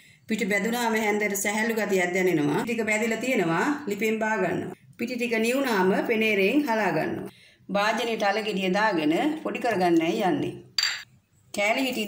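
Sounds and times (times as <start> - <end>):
woman talking: 0.3 - 10.6, 11.5 - 12.0
ceramic dish clinking glass bowl: 10.8 - 11.1.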